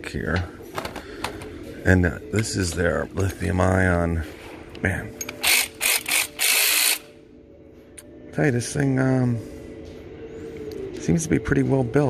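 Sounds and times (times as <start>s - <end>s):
cordless ratchet buzzing: 5.2s - 7.1s.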